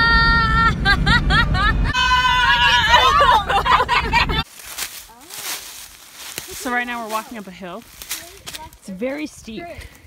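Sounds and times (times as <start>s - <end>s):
car road rumble: 0.0s - 5.8s
women shrieking and yelling: 1.8s - 4.4s.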